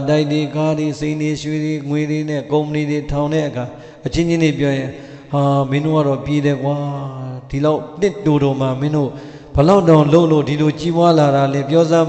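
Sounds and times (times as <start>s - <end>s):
man chanting a sermon: 0.0s - 12.0s.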